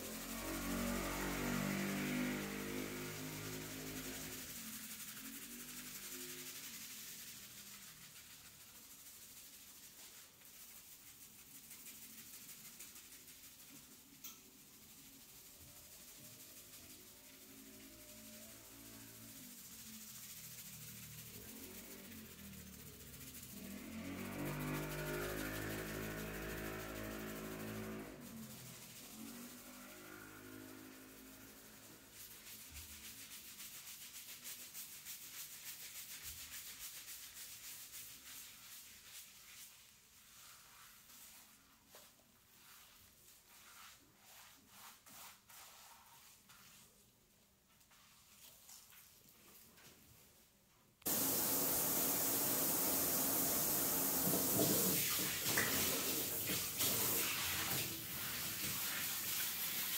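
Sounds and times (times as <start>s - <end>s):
fingers scrubbing lathered hair: 0.0s - 47.1s, 47.7s - 49.9s, 51.1s - 59.9s.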